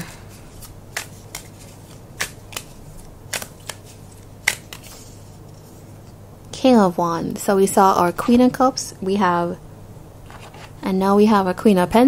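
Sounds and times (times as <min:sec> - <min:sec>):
cards being shuffled: 0:00.1 - 0:05.7, 0:10.2 - 0:10.8.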